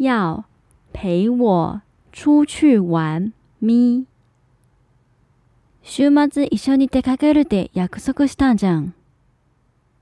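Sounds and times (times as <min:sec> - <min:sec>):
woman speaking: 0:00.0 - 0:04.2, 0:05.8 - 0:09.0.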